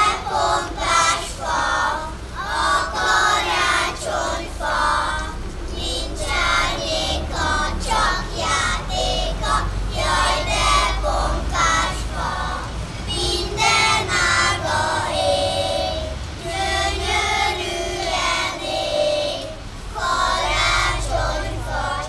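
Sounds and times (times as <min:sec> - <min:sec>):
children singing: 0:00.0 - 0:22.0.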